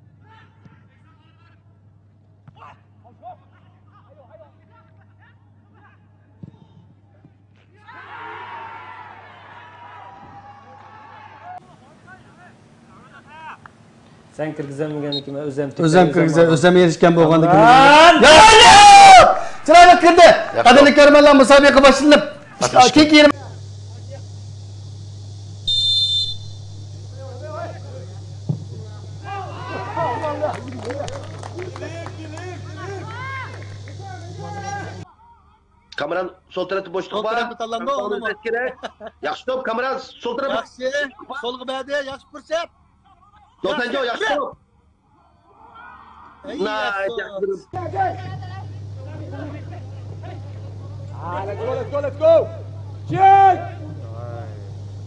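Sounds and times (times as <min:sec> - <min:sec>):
distant voices and shouts: 0:02.5 - 0:13.7, 0:16.0 - 0:24.4, 0:25.7 - 0:36.0, 0:42.0 - 0:55.0
steady low hum: 0:11.6 - 0:55.0
voices calling out: 0:17.4 - 0:35.7
low hum: 0:21.9 - 0:35.0
referee's whistle blast: 0:25.7 - 0:26.8.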